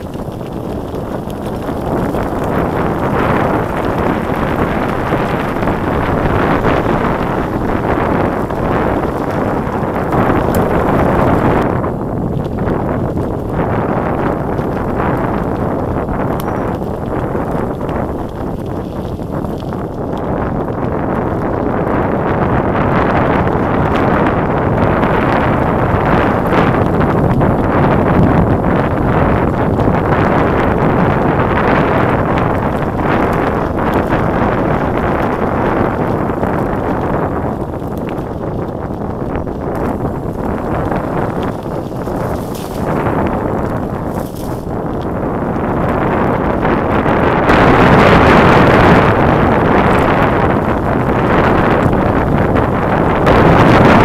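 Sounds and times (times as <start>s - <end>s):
mountain bike rattling on dirt: 0.0s - 54.0s
wind on microphone: 0.0s - 54.0s.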